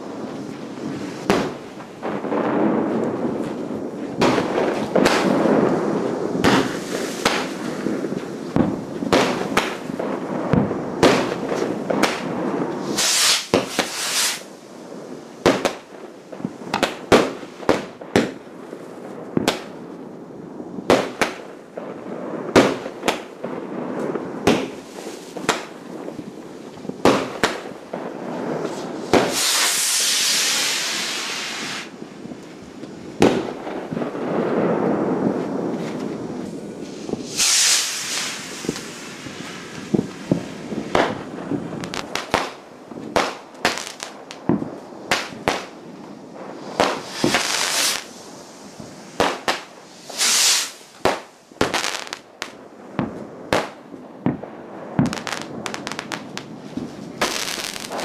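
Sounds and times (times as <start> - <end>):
firework hissing: 0.0 - 15.9, 26.6 - 42.6, 43.2 - 52.6, 55.0 - 58.0
distant fireworks rumble: 0.0 - 58.0
fireworks bangs: 0.0 - 58.0.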